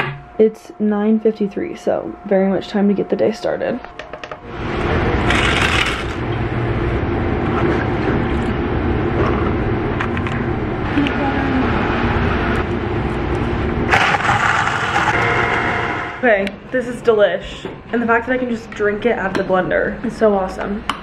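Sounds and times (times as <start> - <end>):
steady mechanical hum: 0.0 - 21.0
blender mixing: 5.2 - 6.2, 13.9 - 16.2.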